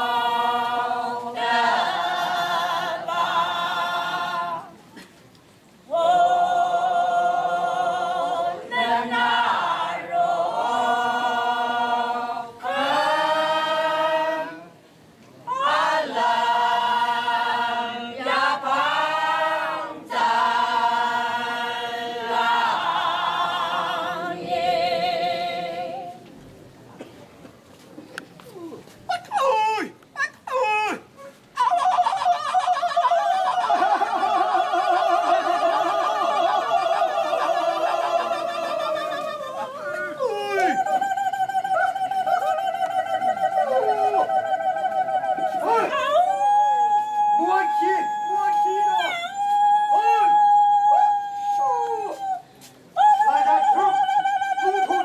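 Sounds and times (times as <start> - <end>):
group of women singing: 0.0 - 4.8, 5.9 - 14.8, 15.5 - 26.2, 32.5 - 48.1, 53.0 - 55.0
rising and falling vocal calls: 28.6 - 55.0
long cries sliding down in pitch: 31.6 - 55.0.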